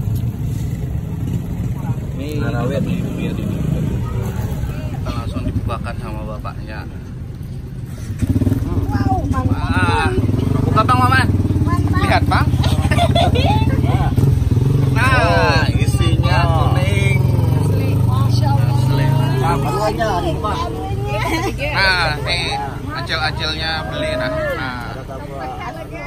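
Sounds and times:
vehicle engine idling: 0:00.0 - 0:26.0
people talking: 0:08.7 - 0:14.2, 0:14.9 - 0:26.0.

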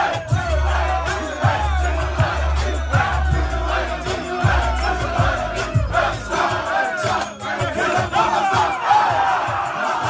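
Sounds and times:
crowd shouting and chanting: 0:00.0 - 0:10.0
loud music with bass beat: 0:00.0 - 0:10.0.

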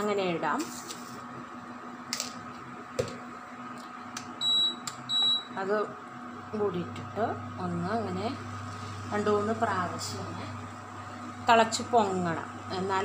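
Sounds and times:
control panel beeps: 0:04.4 - 0:05.6.

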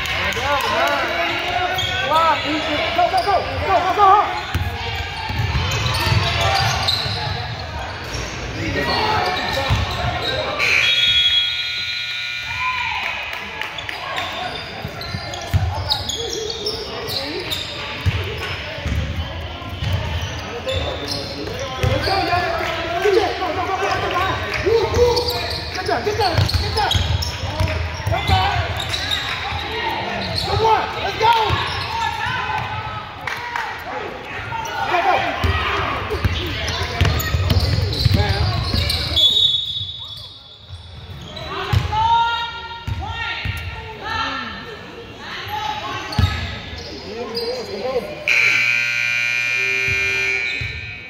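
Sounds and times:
people shouting in echoing gym: 0:08.7 - 0:14.5, 0:21.6 - 0:39.4, 0:41.3 - 0:46.6, 0:48.0 - 0:51.0.

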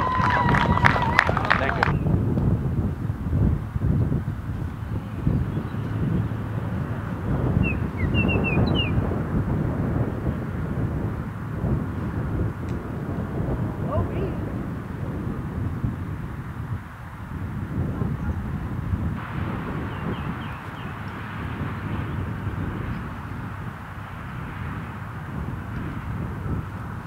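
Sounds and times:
wind buffeting microphone: 0:00.0 - 0:27.0
bird chirping: 0:04.8 - 0:09.1, 0:19.8 - 0:21.2.

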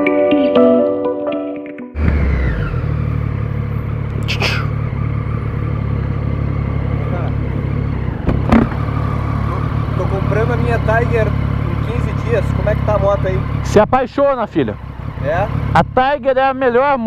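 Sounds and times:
motorcycle engine running: 0:02.0 - 0:17.0.

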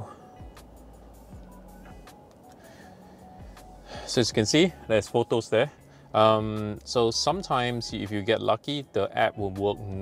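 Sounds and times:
faint music from car radio: 0:00.0 - 0:10.0.

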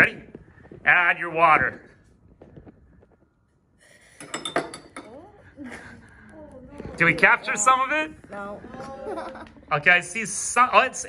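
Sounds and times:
glassware clinking: 0:04.2 - 0:05.2.

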